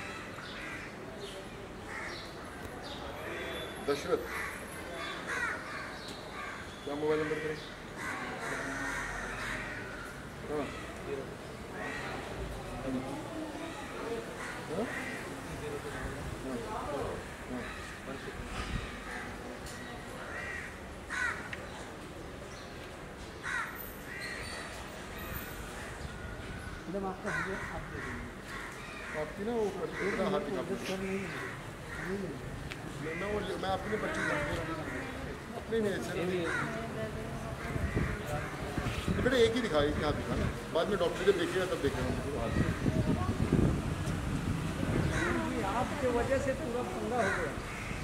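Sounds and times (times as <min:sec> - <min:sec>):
crow cawing: 0:00.0 - 0:01.0, 0:01.9 - 0:02.3, 0:04.3 - 0:11.0, 0:11.7 - 0:12.3, 0:14.2 - 0:15.4, 0:20.3 - 0:21.6, 0:23.4 - 0:24.4, 0:27.1 - 0:32.4, 0:33.0 - 0:35.4, 0:36.0 - 0:37.0, 0:37.6 - 0:39.8, 0:45.0 - 0:46.2, 0:46.9 - 0:48.0.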